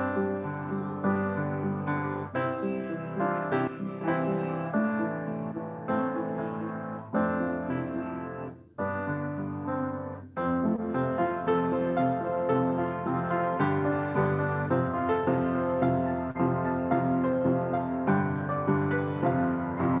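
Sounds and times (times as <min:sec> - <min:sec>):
solo piano playing: 0:00.0 - 0:20.0.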